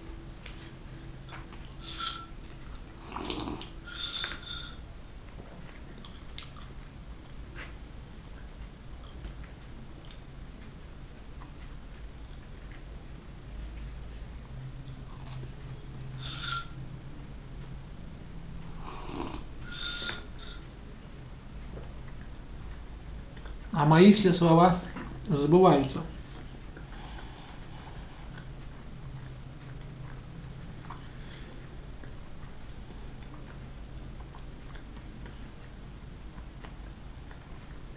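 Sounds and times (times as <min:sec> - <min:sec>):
mouth clicks of chewing: 0:06.0 - 0:06.8, 0:11.4 - 0:12.8.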